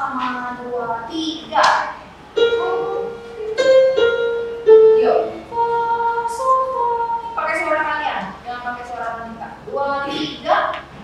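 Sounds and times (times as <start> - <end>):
electronic keyboard notes: 2.4 - 7.4.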